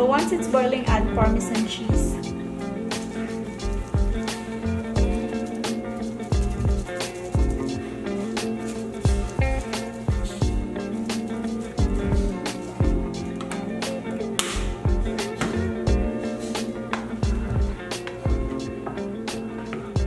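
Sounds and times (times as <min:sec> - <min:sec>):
background music with steady beat: 0:00.0 - 0:20.0.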